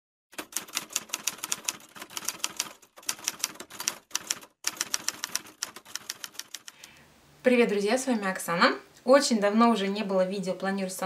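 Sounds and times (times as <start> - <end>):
typewriter keys clacking: 0.4 - 6.9.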